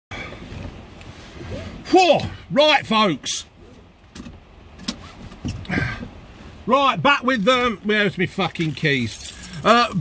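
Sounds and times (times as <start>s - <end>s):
seat belt webbing sliding: 3.6s - 5.8s.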